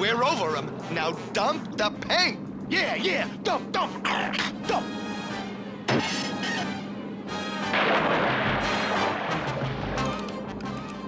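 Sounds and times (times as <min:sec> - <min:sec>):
noisy rush with low rumble: 0:00.0 - 0:11.0
sudden sharp hit: 0:07.8 - 0:09.9.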